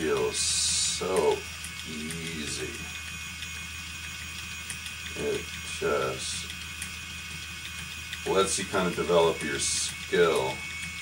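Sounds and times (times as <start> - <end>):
electric spinning wheel humming: 0.0 - 11.0.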